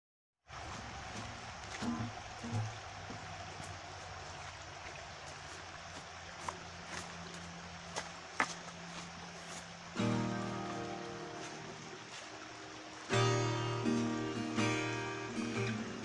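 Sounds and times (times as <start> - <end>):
creek water trickling: 0.4 - 16.0.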